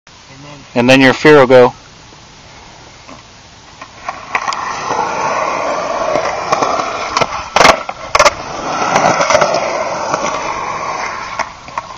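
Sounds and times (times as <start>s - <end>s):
skateboard wheels rolling on concrete: 0.3s - 11.9s
skateboard clacking on concrete: 3.8s - 11.9s.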